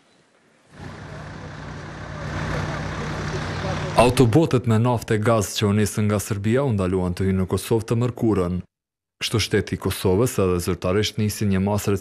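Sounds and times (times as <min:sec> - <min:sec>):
heavy vehicle engines idling: 0:00.7 - 0:04.4
traffic noise: 0:00.7 - 0:04.4.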